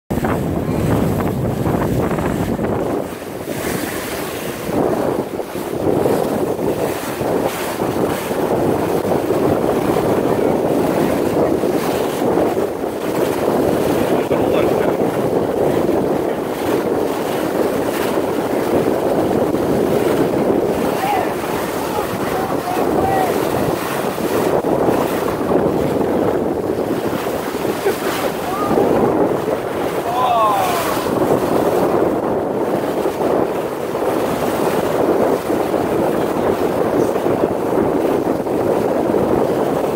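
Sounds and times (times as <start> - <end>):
bow wave rushing along hull: 0.1 - 39.9
wind buffeting microphone: 0.1 - 39.9.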